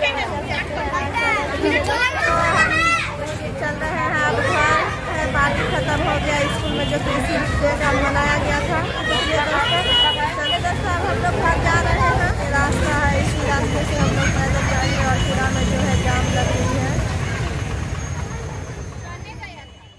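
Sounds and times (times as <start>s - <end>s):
auto-rickshaw passing: 0.0s - 19.9s
hubbub of many people talking: 0.0s - 19.9s
motorcycles passing: 0.0s - 19.9s.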